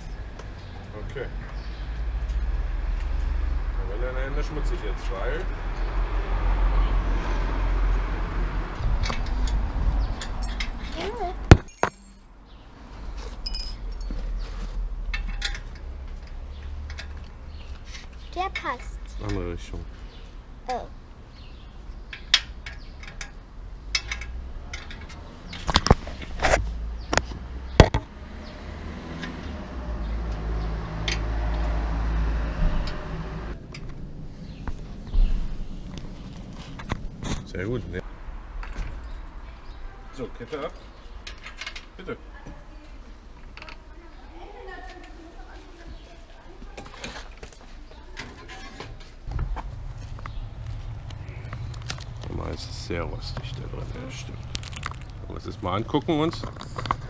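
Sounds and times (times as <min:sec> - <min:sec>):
city street traffic rumble: 0:00.0 - 0:57.0.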